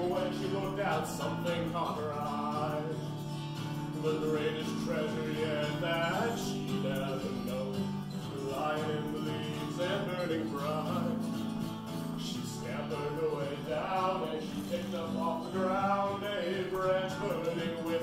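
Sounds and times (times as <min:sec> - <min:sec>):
acoustic guitar strumming: 0:00.0 - 0:18.0
man singing: 0:00.0 - 0:18.0.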